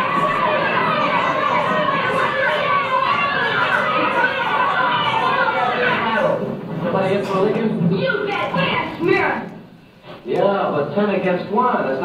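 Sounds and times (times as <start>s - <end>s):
boys shouting and yelling: 0.0s - 9.6s.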